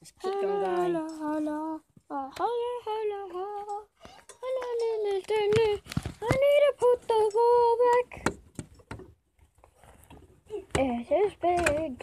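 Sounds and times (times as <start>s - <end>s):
child singing wordless notes: 0.2s - 8.2s.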